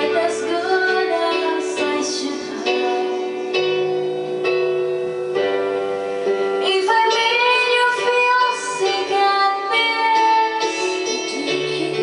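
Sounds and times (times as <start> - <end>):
woman singing into microphone: 0.0 - 4.0, 6.6 - 12.0
recorded backing music: 0.0 - 12.0.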